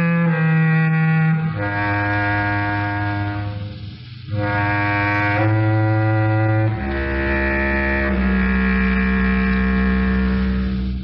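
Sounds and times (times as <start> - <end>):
low orchestral chords with strings: 0.0 - 11.0.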